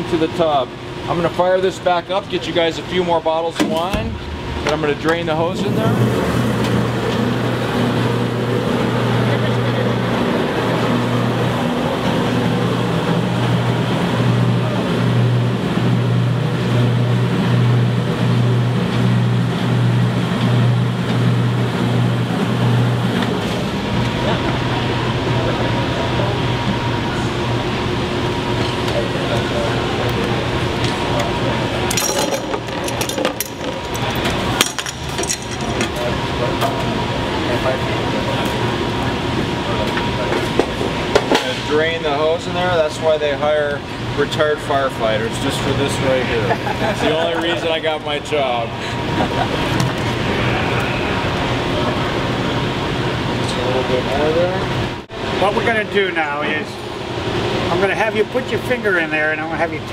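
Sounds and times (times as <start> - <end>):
machine hum with low throb: 0.0 - 59.9.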